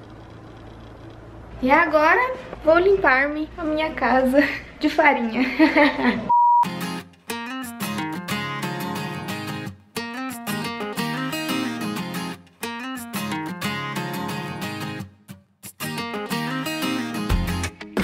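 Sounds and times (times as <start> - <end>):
acoustic guitar picking melody: 6.6 - 18.0.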